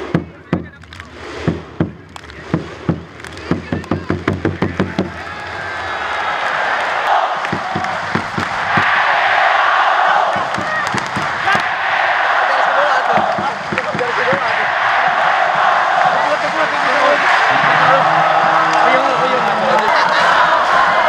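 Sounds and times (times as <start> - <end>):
bass drum beaten quickly: 0.0 - 5.2, 13.1 - 19.5
stadium crowd cheering and chanting: 0.0 - 21.0.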